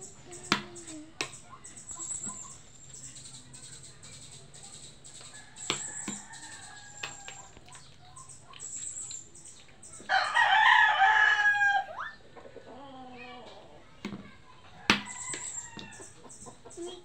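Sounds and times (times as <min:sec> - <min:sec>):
faint high chirps: 0:00.0 - 0:10.4, 0:14.8 - 0:17.0
loud crowing call: 0:10.1 - 0:12.1.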